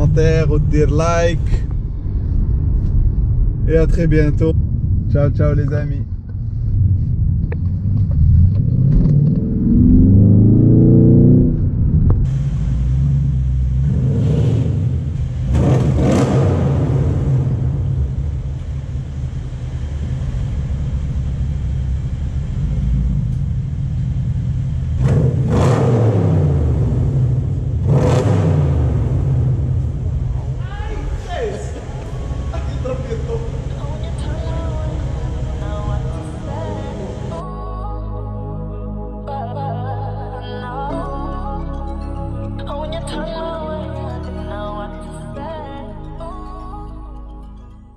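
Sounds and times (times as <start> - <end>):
car engine accelerating and revving: 6.9 - 30.6, 31.4 - 37.4.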